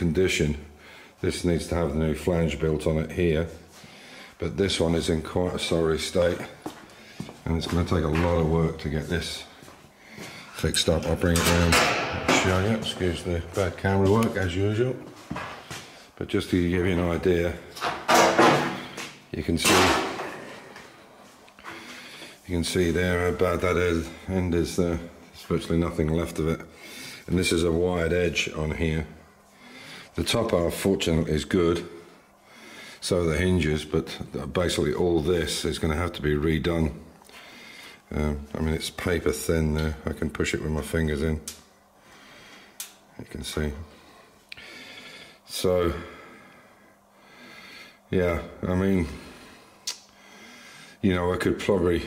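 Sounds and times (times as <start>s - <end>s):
faint breath through the nose: 3.7s - 4.4s, 37.3s - 38.1s
person speaking: 4.4s - 9.7s, 10.3s - 20.8s, 22.4s - 29.3s.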